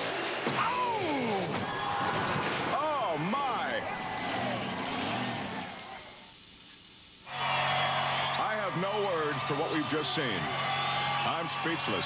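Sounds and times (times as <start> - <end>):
truck engine running: 3.9 - 5.8.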